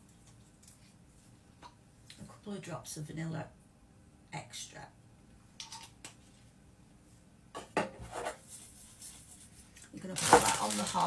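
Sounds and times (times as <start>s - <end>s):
kitchen items clinking and knocking: 10.2s - 11.0s.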